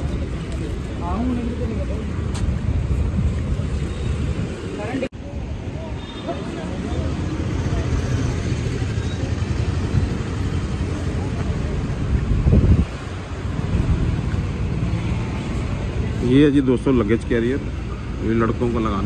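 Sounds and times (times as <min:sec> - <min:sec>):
street traffic rumble: 0:00.0 - 0:19.0
wind on microphone: 0:11.7 - 0:14.8.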